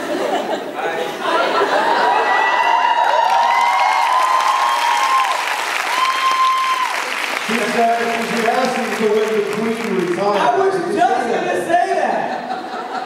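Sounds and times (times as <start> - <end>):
audience applauding: 1.8 - 10.7
high calls and whoops: 2.1 - 7.2.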